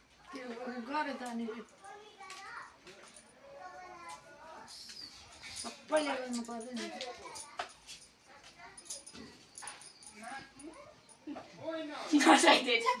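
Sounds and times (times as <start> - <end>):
voices in room: 0.0 - 13.0.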